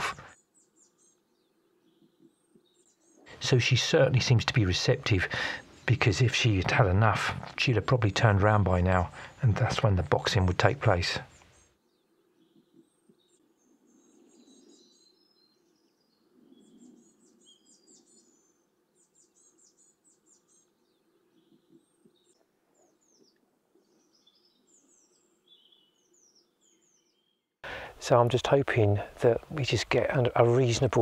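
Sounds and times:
low outdoor background hum: 0.0 - 14.5, 27.6 - 31.0
small birds chirping and trilling: 0.0 - 31.0.

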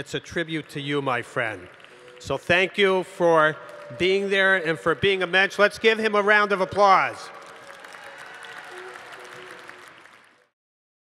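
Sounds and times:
faint music: 0.0 - 10.5
audience applauding: 0.0 - 10.6.

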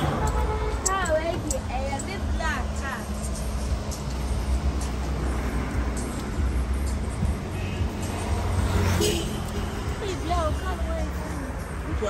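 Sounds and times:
car engine rumble: 0.0 - 12.0.

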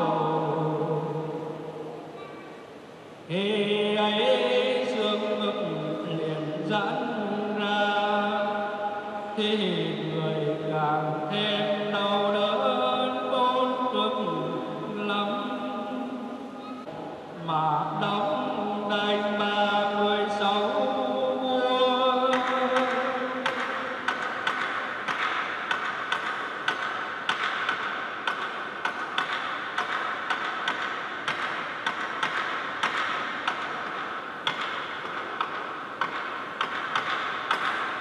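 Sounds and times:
congregation chanting: 0.0 - 2.6, 3.3 - 25.8.

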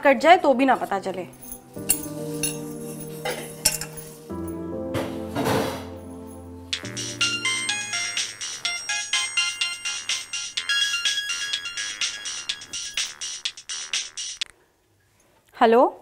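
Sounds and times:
soft low music drone: 1.3 - 10.5
mobile phone ringtone: 6.6 - 14.4.

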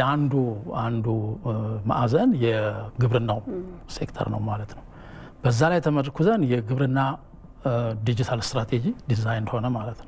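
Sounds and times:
man talking: 0.0 - 4.8.

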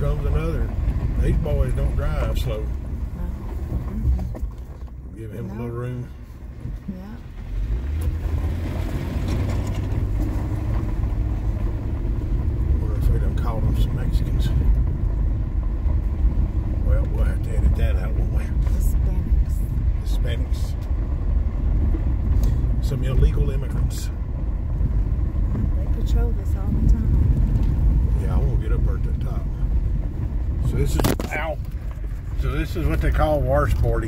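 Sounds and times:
car engine and tyre rumble on gravel: 0.0 - 34.0.

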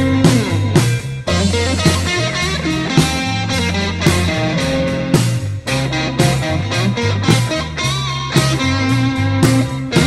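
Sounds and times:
bass guitar: 0.0 - 10.0
drums: 0.0 - 10.0
electric guitar: 0.0 - 10.0.

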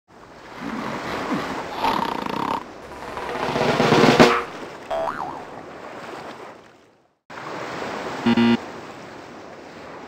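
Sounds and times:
rushing underwater ambience: 0.2 - 6.3
boing-like tone: 4.9 - 5.5.

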